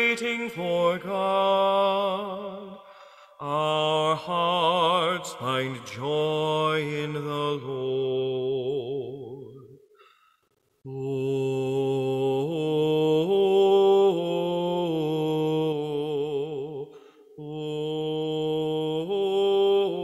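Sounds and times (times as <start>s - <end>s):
slow chant sung in held notes: 0.0s - 9.8s, 10.9s - 20.0s.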